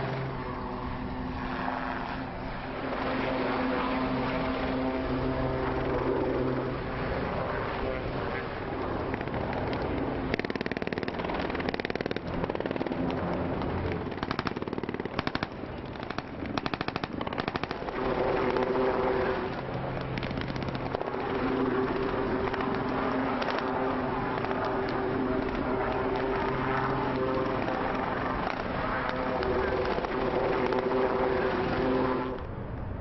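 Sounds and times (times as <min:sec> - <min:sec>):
boat engine droning: 0:00.0 - 0:32.7
automatic gunfire: 0:14.1 - 0:17.8.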